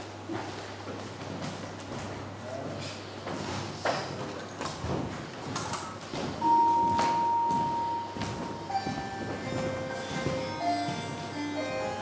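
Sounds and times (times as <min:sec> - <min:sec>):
chime-like electronic notes: 0:06.4 - 0:12.0
long steady electronic tone: 0:06.4 - 0:12.0.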